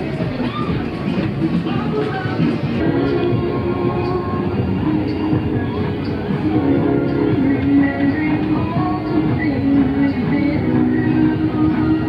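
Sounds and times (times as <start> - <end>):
fairground music: 0.0 - 12.0.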